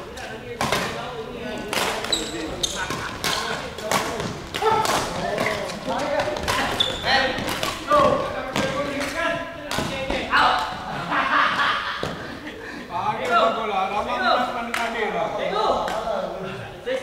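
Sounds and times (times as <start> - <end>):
indistinct voices chattering: 0.0 - 11.4
badminton racket hitting shuttlecock: 2.8 - 10.1.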